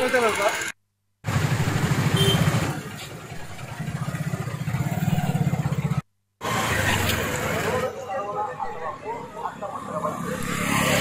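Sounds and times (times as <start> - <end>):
motorcycle engine running: 0.0 - 6.0.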